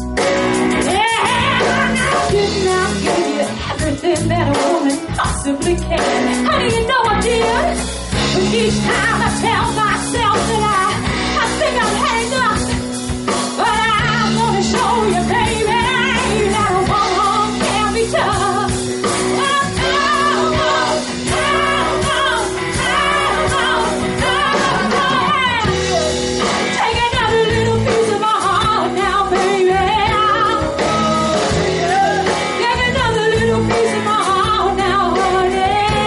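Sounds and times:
live band playing: 0.0s - 36.0s
woman singing into microphone: 0.8s - 12.8s, 13.5s - 36.0s.

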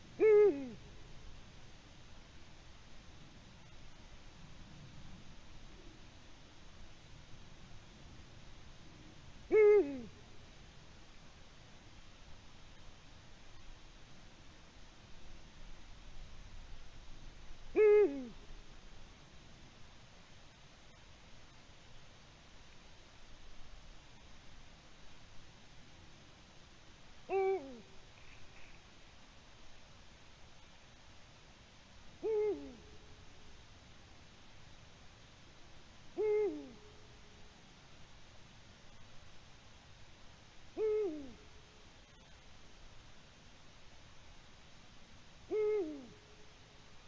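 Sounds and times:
owl hooting: 0.0s - 0.8s, 9.5s - 10.2s, 17.7s - 18.5s, 27.3s - 28.0s, 32.2s - 33.2s, 36.1s - 37.2s, 40.7s - 42.4s, 45.4s - 46.5s.

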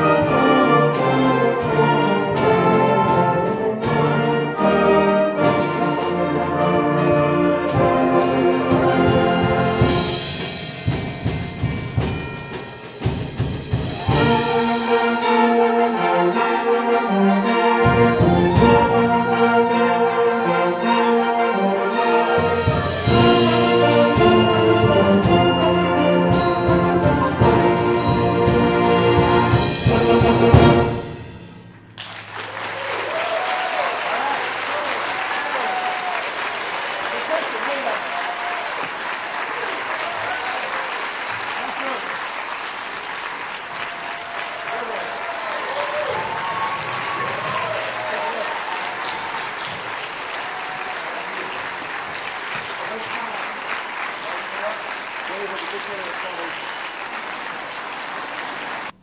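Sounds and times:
audience applause: 31.9s - 59.0s.

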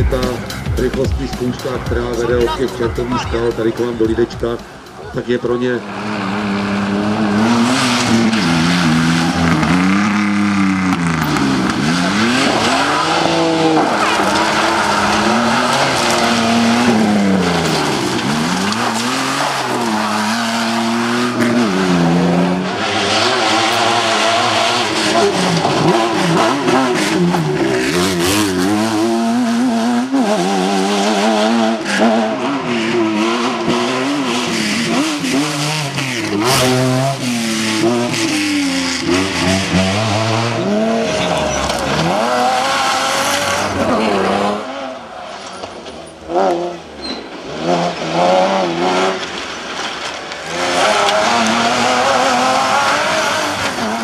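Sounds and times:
engines revving hard: 0.0s - 54.0s.

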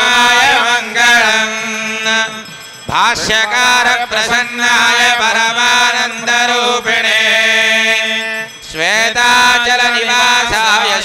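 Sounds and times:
person chanting sung verses: 0.0s - 11.0s.

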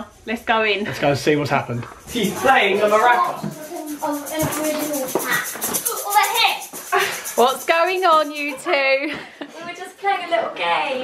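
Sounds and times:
voices talking: 1.5s - 11.0s
hand rattle shaken quickly: 1.6s - 9.1s.

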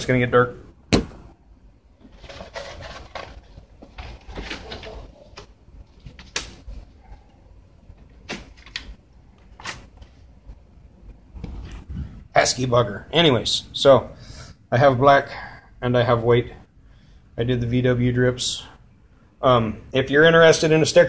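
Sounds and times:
rustling and scraping: 2.0s - 10.6s.

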